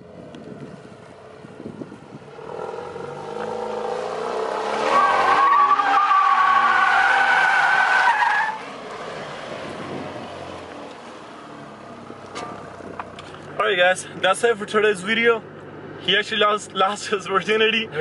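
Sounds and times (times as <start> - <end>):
car engine revving: 2.3 - 13.4
tyres squealing: 4.6 - 8.6.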